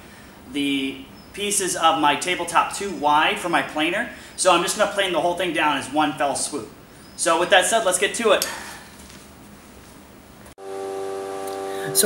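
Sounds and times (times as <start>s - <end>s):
faint room noise hiss: 0.0s - 10.6s.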